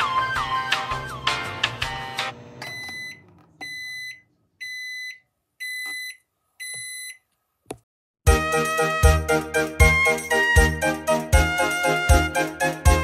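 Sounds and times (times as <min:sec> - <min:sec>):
microwave high beeps: 0:02.0 - 0:07.2.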